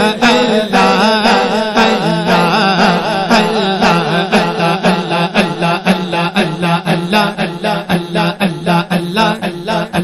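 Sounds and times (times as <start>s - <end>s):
man chanting rhythmically: 0.0s - 10.0s.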